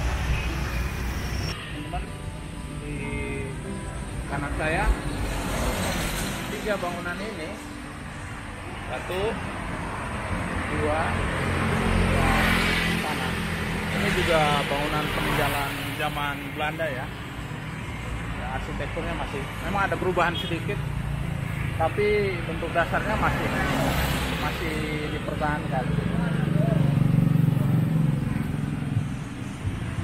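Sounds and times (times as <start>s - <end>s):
street traffic: 0.0s - 30.0s
voices talking: 6.3s - 29.8s.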